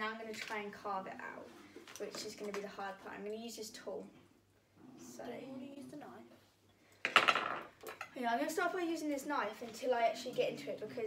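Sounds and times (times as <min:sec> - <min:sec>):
metal tools clattering on table: 0:07.1 - 0:08.1.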